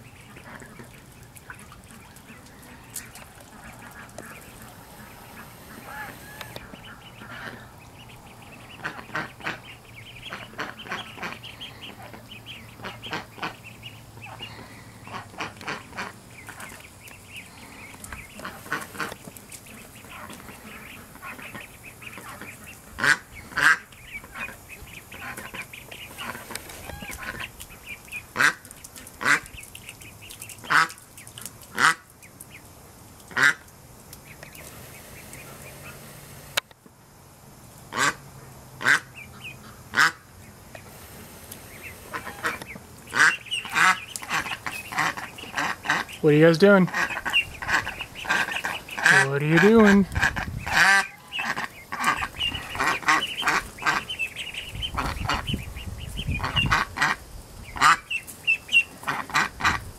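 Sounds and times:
ducklings peeping: 0.0s - 36.7s, 37.9s - 59.9s
loud short duck calls: 5.7s - 7.7s, 38.8s - 40.2s, 46.8s - 54.2s.

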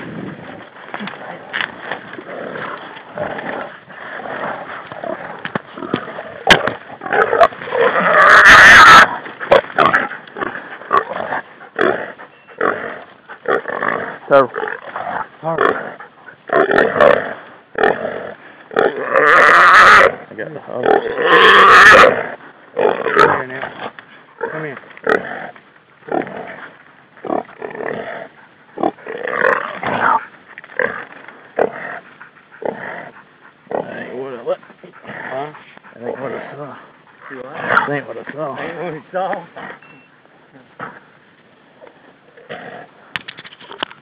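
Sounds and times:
hog grunting: 0.9s - 39.8s
hog squealing and grunting: 5.9s - 12.7s.

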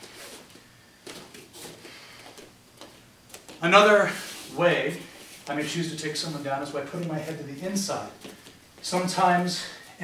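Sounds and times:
cloth and feet shuffling on mats: 0.0s - 10.0s.

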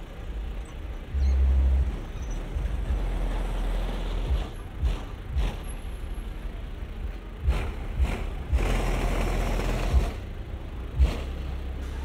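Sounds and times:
car engines rumbling: 0.0s - 12.0s.

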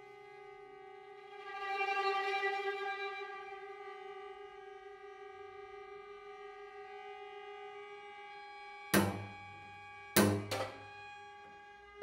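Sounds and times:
loud percussive string attacks: 9.0s - 10.9s
strings holding a bowed note: 9.0s - 11.8s.

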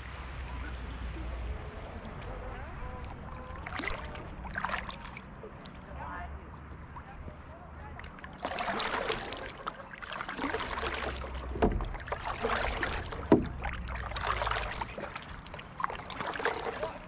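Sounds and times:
paddle splashing in water: 2.1s - 17.0s
sharp knocks: 13.2s - 13.7s.

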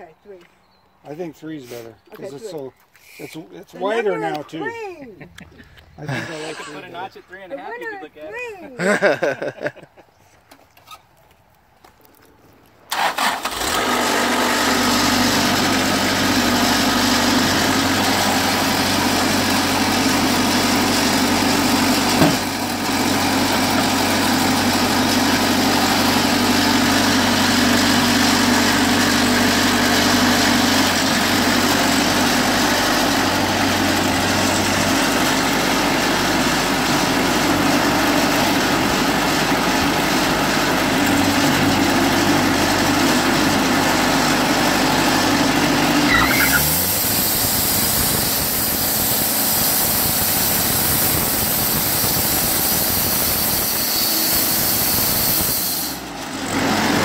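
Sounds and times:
sawmill engine running: 12.9s - 57.0s.

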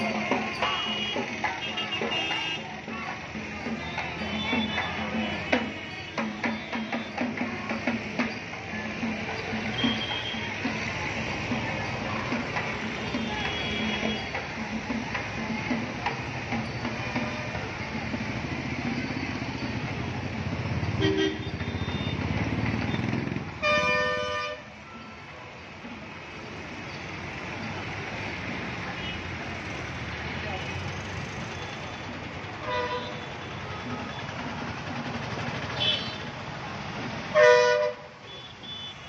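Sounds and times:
vehicle engines running: 0.0s - 38.1s
vehicle horns honking: 0.5s - 2.7s, 9.8s - 10.5s, 13.0s - 14.4s, 20.9s - 22.3s, 22.9s - 24.7s, 32.6s - 34.2s, 35.8s - 36.3s, 37.3s - 39.0s.

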